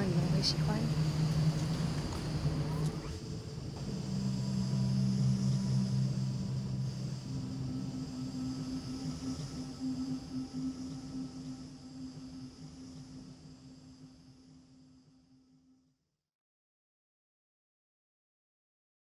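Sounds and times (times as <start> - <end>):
music of low held notes: 0.0 - 16.0.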